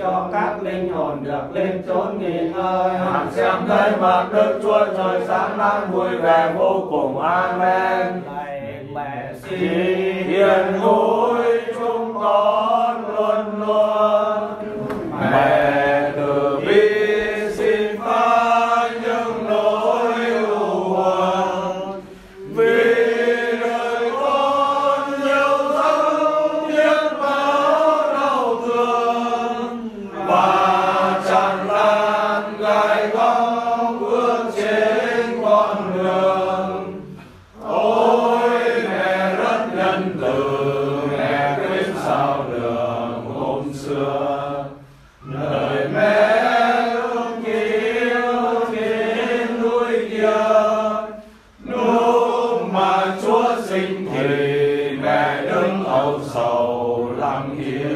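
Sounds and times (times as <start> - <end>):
voices singing a slow prayer chant: 0.0 - 57.9.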